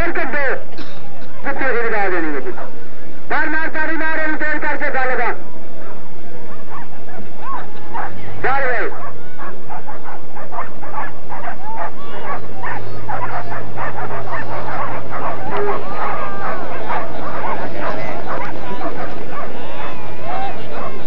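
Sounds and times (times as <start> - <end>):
dogs barking and yelping: 2.1 - 2.8, 5.4 - 21.0
people shouting: 5.4 - 21.0.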